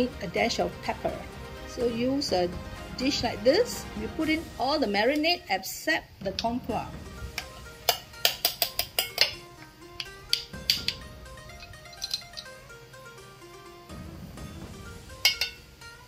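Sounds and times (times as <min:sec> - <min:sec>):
background music: 0:00.0 - 0:16.0
spoons clinking on metal bowl: 0:07.9 - 0:09.4, 0:11.6 - 0:12.6, 0:15.2 - 0:15.6.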